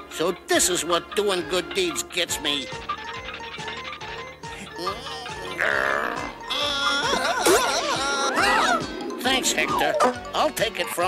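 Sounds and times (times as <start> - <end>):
cartoon background music: 0.0 - 11.0
loud wavering strained cry: 5.4 - 9.0.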